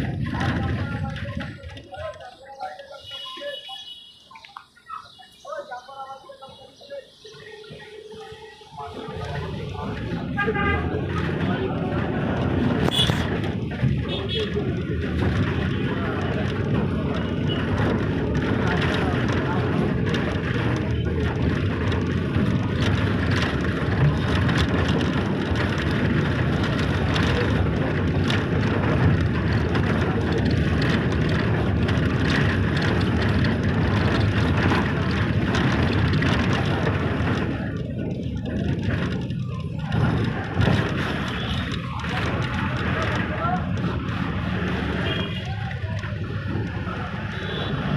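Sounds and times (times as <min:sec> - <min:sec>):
vehicle road and engine noise: 0:00.0 - 0:47.9.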